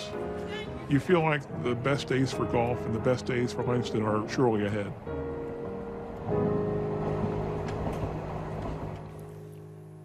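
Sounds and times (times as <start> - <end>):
train rumbling past: 0.9 - 9.5.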